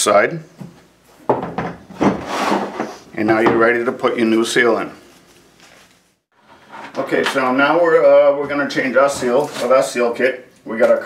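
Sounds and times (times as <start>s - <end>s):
parts rubbing and scraping on table: 1.9s - 3.1s, 5.8s - 7.4s.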